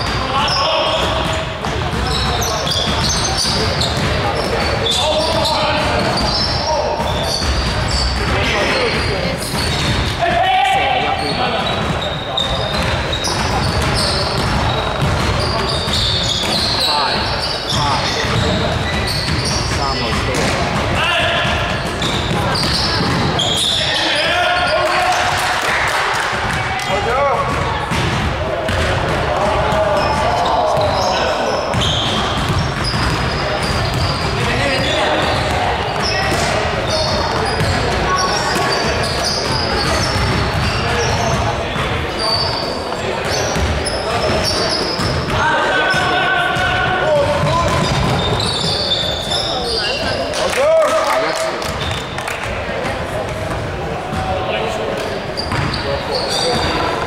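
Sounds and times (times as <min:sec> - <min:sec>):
basketball bouncing on hardwood floor: 0:12.7 - 0:16.6
players shouting: 0:19.5 - 0:27.9, 0:43.3 - 0:51.4.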